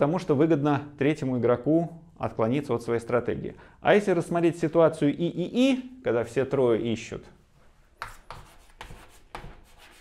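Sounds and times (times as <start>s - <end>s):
chalk scratching on chalkboard: 7.6s - 10.0s.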